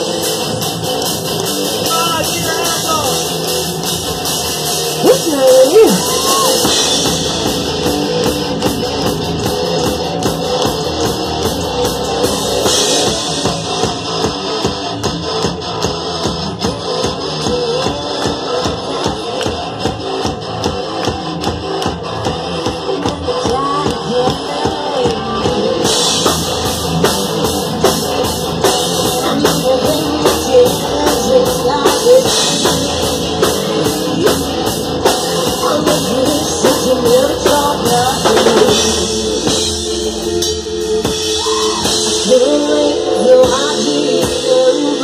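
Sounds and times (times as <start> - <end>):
rock band playing: 0.0 - 45.0.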